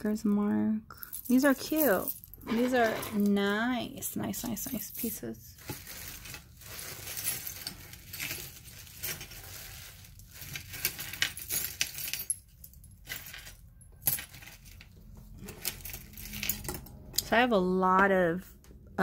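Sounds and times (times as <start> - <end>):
metal jewelry clinking: 1.0 - 17.4.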